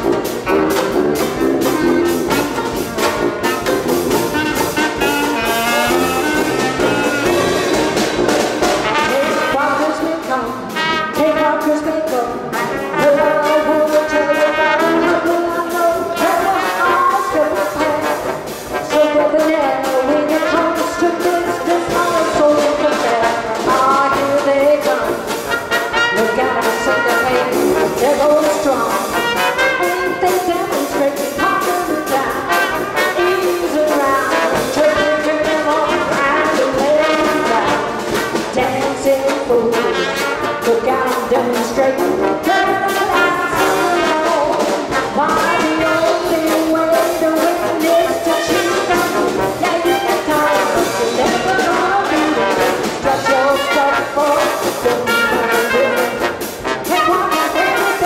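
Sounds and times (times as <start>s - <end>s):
jazz band playing live: 0.0s - 58.0s
trombone: 0.0s - 58.0s
trumpet: 0.0s - 58.0s.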